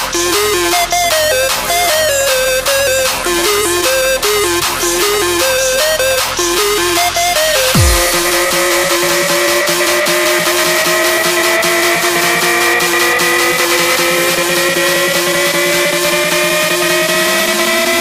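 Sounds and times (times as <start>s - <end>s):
low tone sweeping upward: 7.8s - 10.8s
synth riser climbing in pitch: 7.8s - 18.0s.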